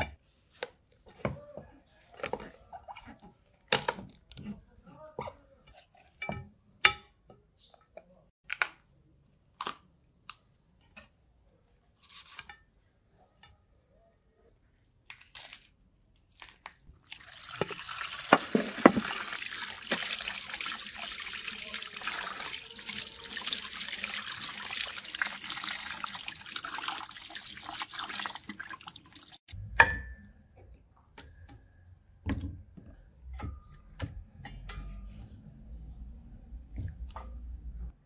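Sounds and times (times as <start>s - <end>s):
tap water running onto plate: 17.1s - 29.4s
splashes and knocks: 17.4s - 20.4s.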